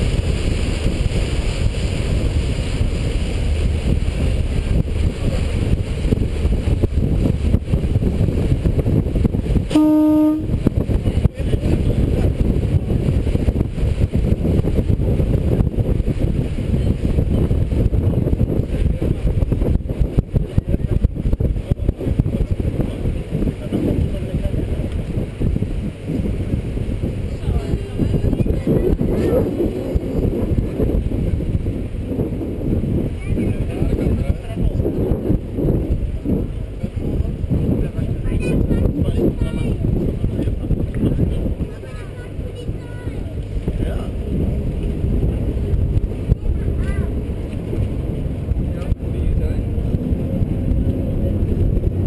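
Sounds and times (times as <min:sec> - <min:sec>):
ferry engine rumble: 0:00.0 - 0:52.0
wind buffeting microphone: 0:00.0 - 0:52.0
short horn toot: 0:09.7 - 0:10.6.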